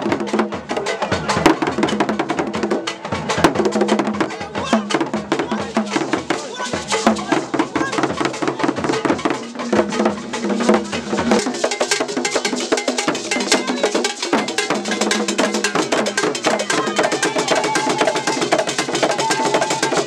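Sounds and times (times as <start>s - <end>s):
hand drums in fast rhythm: 0.0s - 20.0s
struck percussion ringing: 0.0s - 20.0s.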